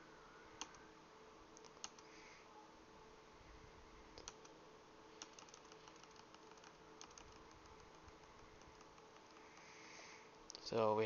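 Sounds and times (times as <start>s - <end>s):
low steady hum: 0.0s - 11.0s
computer keyboard typing: 1.6s - 2.1s, 4.2s - 4.5s, 5.2s - 9.7s.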